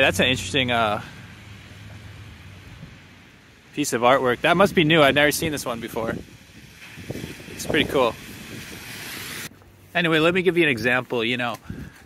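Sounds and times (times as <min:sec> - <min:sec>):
street ambience hiss: 0:00.0 - 0:12.0.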